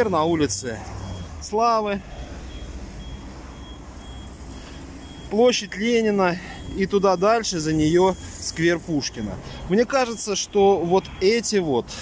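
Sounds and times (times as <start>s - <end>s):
faint high beep: 0.0s - 9.3s.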